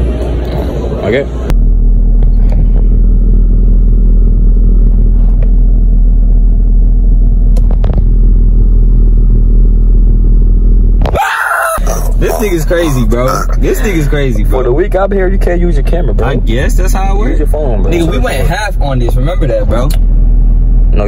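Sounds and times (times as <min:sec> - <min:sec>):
car engine idling: 0:00.0 - 0:11.1, 0:11.8 - 0:21.0.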